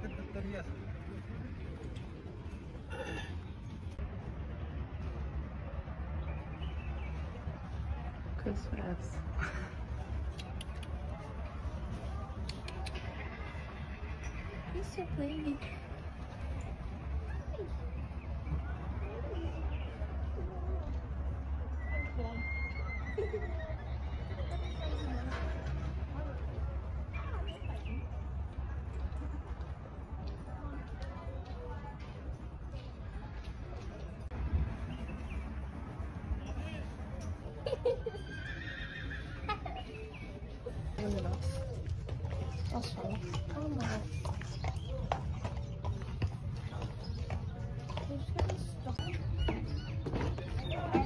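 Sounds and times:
distant voices: 0:00.0 - 0:51.0
horse hooves clip-clopping: 0:24.0 - 0:37.6, 0:38.2 - 0:51.0
horse whinnying: 0:38.2 - 0:39.5.

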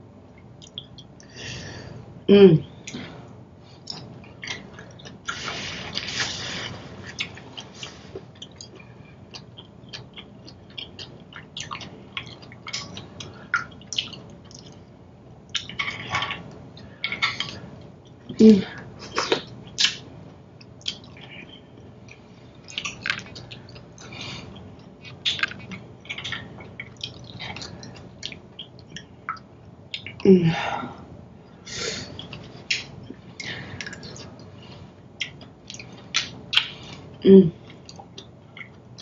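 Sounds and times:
chewing and lip smacks: 0:00.3 - 0:01.3, 0:03.8 - 0:14.9, 0:15.5 - 0:30.2, 0:31.4 - 0:39.0.

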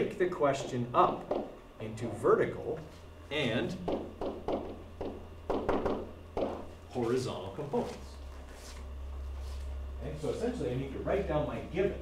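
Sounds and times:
steady low hum: 0:00.0 - 0:12.0
stylus tapping on screen: 0:01.2 - 0:01.6, 0:03.9 - 0:06.8.

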